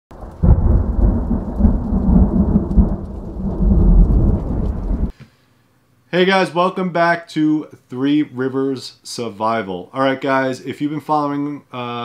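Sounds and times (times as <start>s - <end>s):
rumbling thunder-like noise: 0.1s - 5.1s.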